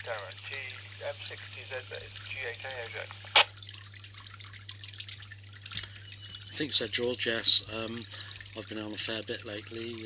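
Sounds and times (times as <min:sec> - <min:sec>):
steady low hum: 0:00.0 - 0:10.0
radio squelch burst: 0:00.5 - 0:03.5
faint crackle: 0:02.2 - 0:04.4.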